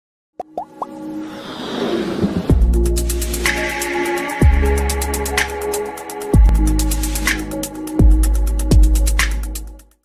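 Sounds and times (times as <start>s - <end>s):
rising whoosh with held tones: 1.1s - 3.4s.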